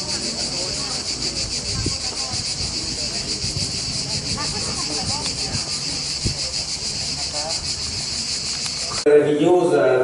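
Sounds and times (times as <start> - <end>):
people talking: 0.0 - 8.0, 8.6 - 10.0
cicadas shrilling: 0.0 - 10.0.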